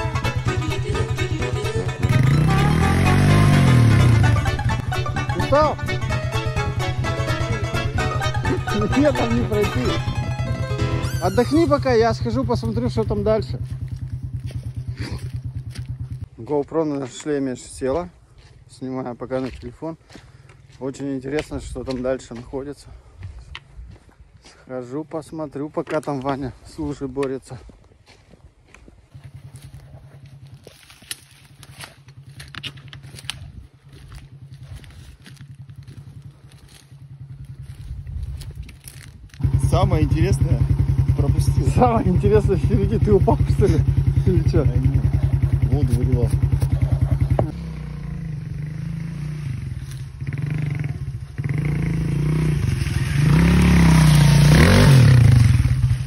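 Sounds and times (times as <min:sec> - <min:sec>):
moped engine idling: 0:00.0 - 0:16.3, 0:33.8 - 0:37.9, 0:39.4 - 0:56.0
twigs crackling underfoot: 0:13.4 - 0:39.5.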